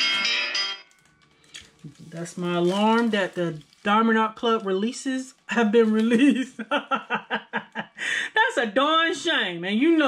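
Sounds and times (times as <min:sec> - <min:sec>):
alarm tone playing a tune: 0:00.0 - 0:00.9.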